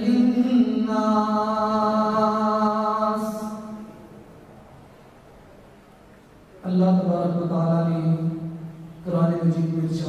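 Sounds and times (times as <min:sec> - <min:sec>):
man chanting over microphone: 0:00.0 - 0:04.0, 0:06.6 - 0:10.0.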